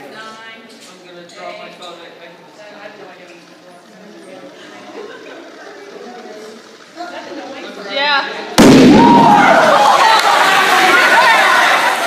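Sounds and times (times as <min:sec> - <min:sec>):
low crowd chatter: 0:00.0 - 0:12.0
loud bottle bomb bang: 0:08.6 - 0:09.7.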